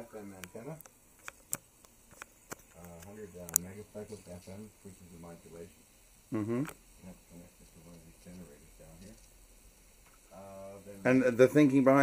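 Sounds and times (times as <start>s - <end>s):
sharp irregular clicks: 0.4s - 3.7s.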